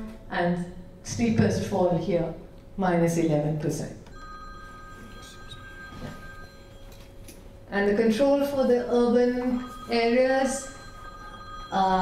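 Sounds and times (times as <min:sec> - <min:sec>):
faint room hum: 0:00.0 - 0:12.0
steady two-pitch electronic tone: 0:04.1 - 0:12.0.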